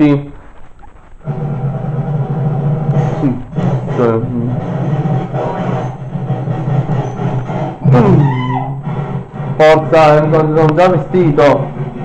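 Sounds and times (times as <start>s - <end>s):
cartoon music from television: 0.4s - 12.0s.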